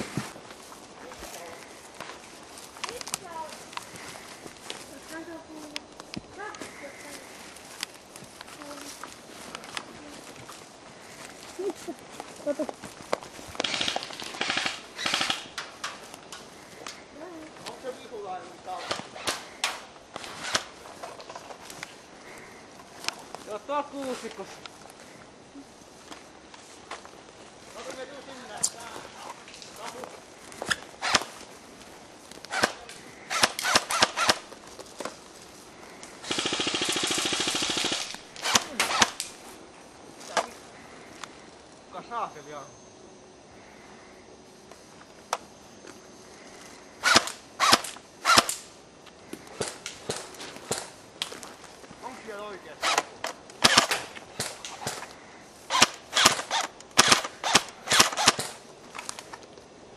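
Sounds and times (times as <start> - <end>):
airsoft guns firing bursts: 13.6 - 15.6, 32.5 - 34.5, 36.2 - 39.2, 47.0 - 48.6, 52.8 - 55.1, 55.7 - 58.6.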